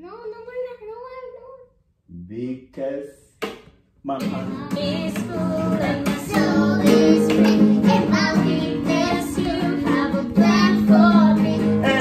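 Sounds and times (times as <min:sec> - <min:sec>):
strummed acoustic guitar: 0:04.1 - 0:12.0
child and adults singing: 0:04.2 - 0:12.0.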